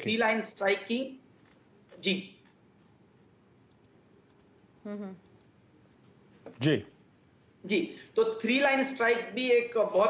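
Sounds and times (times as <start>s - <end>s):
man's voice: 6.6s - 6.8s.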